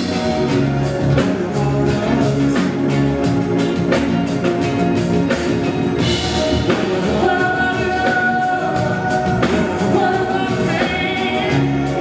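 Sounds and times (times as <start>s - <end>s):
live band playing: 0.0s - 12.0s
man singing into a microphone: 0.8s - 3.4s, 6.3s - 12.0s.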